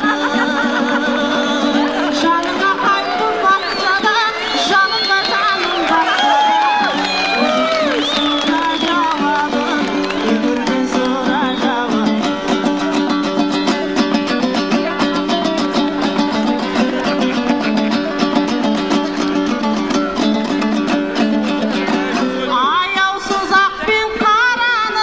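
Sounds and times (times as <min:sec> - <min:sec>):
woman singing: 0:00.0 - 0:16.8, 0:22.1 - 0:25.0
plucked lute strumming: 0:00.0 - 0:25.0.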